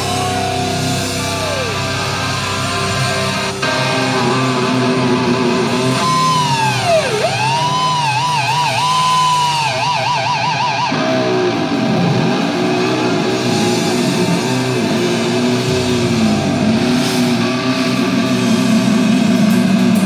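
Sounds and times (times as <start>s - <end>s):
lead guitar with vibrato: 0.0s - 20.0s
metal band playing: 0.0s - 20.0s.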